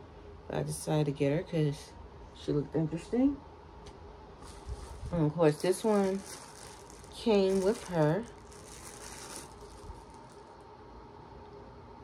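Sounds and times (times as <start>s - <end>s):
faint steady hum: 0.0s - 12.0s
soft plastic rustle: 4.4s - 10.6s.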